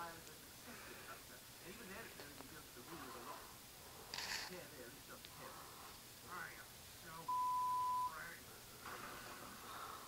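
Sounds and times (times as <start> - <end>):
cartoon dialogue from television: 0.0 - 8.7
censor bleep: 7.3 - 8.2.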